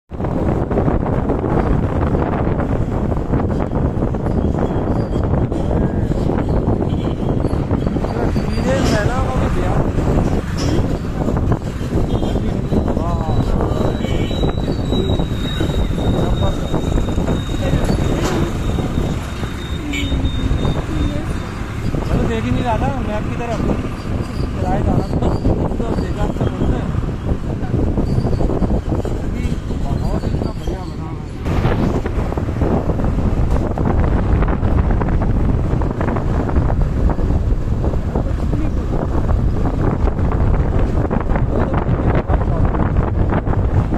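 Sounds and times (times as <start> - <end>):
motorbike road noise: 0.1 - 43.9
street traffic: 0.1 - 43.9
wind buffeting microphone: 0.1 - 43.9
voices talking: 7.8 - 31.9.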